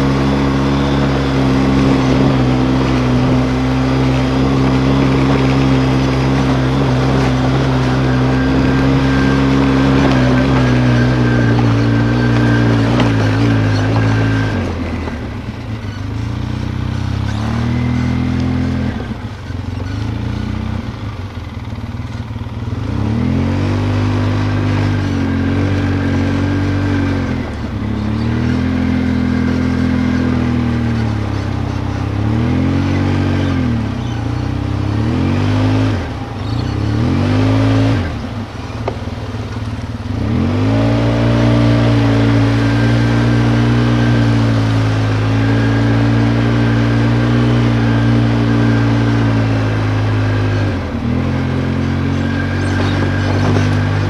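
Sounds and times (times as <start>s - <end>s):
atv engine revving: 0.0s - 54.0s.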